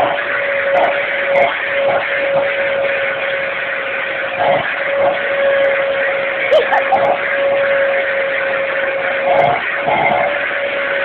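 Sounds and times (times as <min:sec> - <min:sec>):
vacuum cleaner running: 0:00.0 - 0:11.0.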